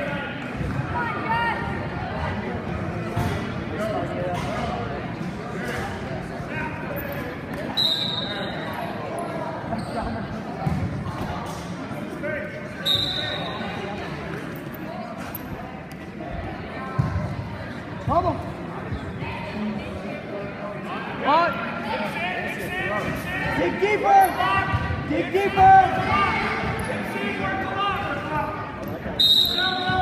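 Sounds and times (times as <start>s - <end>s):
voices in reverberant gym: 0.0s - 30.0s.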